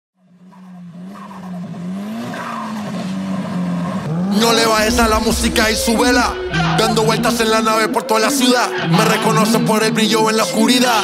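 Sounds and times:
racing car engine: 0:00.2 - 0:11.0.

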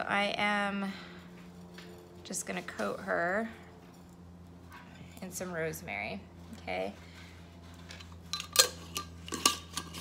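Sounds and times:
glass jar clinking: 0:08.3 - 0:10.0.

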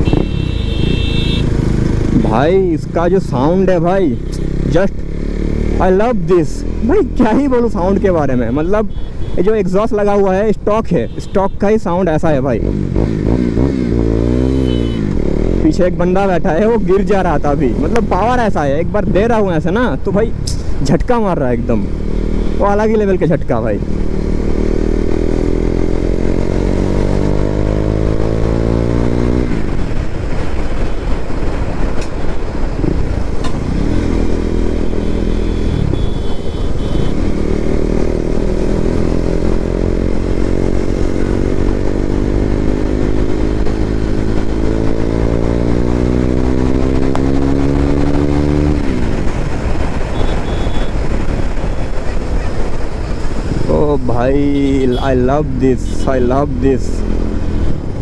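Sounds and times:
motorcycle engine revving: 0:00.0 - 0:09.0, 0:12.4 - 0:20.8, 0:21.6 - 0:58.0.

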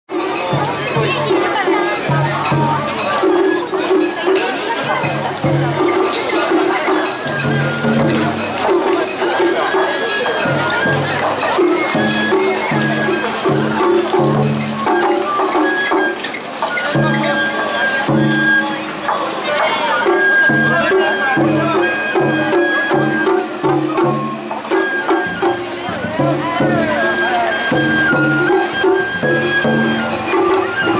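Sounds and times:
bamboo flute high notes: 0:00.1 - 0:05.2, 0:05.8 - 0:30.9
crowd talking: 0:00.1 - 0:30.9
festival drums: 0:00.1 - 0:30.9.

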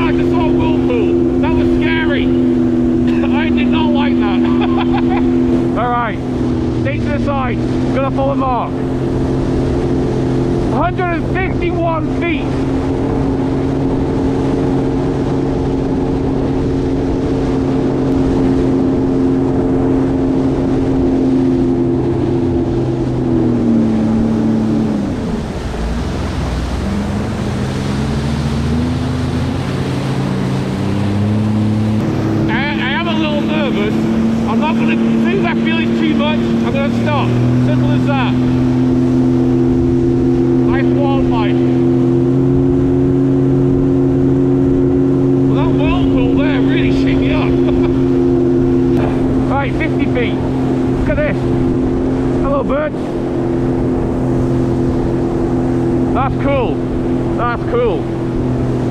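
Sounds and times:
watercraft engine running: 0:00.0 - 0:58.9.

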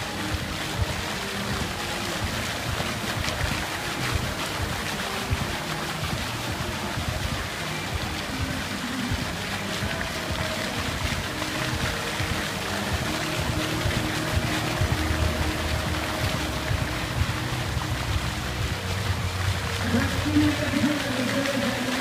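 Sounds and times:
faint music: 0:00.0 - 0:22.0
fountain water jets splashing: 0:00.0 - 0:22.0.

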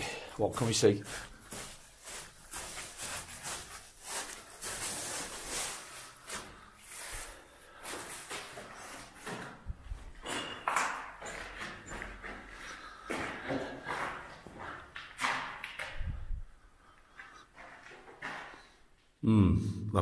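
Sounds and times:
footsteps on gritty concrete: 0:11.1 - 0:15.6.

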